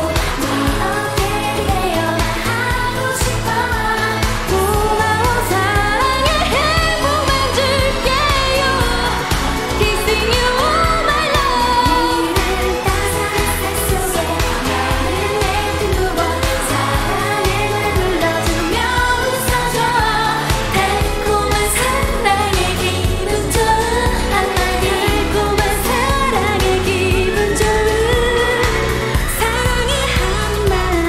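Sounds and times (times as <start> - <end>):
backing track with steady beat: 0.0 - 31.0
women singing pop song: 0.0 - 31.0.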